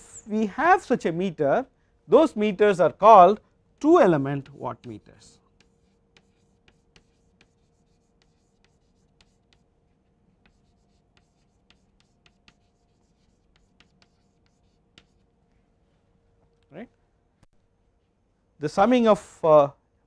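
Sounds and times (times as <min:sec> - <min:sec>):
chalk tapping and scratching: 0:04.2 - 0:15.3.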